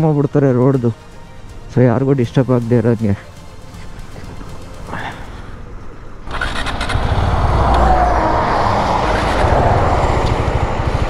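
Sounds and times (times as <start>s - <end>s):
wind and road noise: 0.0s - 11.0s
motorcycle engine rumble: 1.7s - 11.0s.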